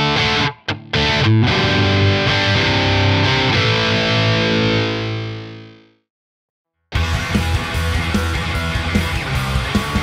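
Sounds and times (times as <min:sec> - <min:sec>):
distorted electric guitar chord: 0:00.0 - 0:06.0, 0:07.0 - 0:10.0.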